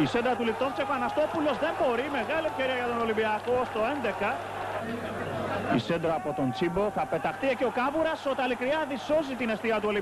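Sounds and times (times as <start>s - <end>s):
man commentating: 0.0s - 10.0s
stadium crowd murmur: 0.0s - 10.0s.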